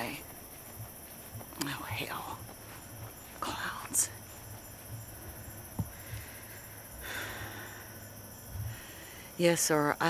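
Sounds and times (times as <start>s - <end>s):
night insects trilling: 0.0s - 10.0s
soft low bump: 0.3s - 6.5s
person breathing out: 5.9s - 8.0s.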